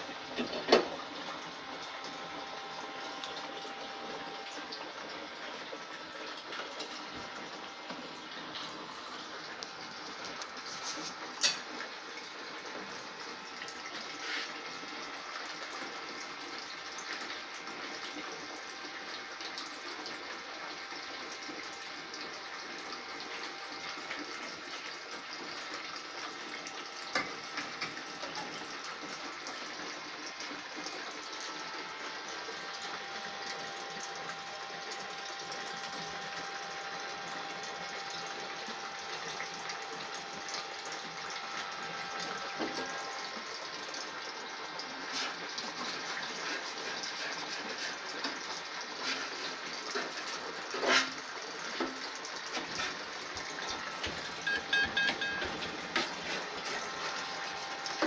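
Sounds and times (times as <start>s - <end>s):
running water from pump: 0.0s - 58.0s.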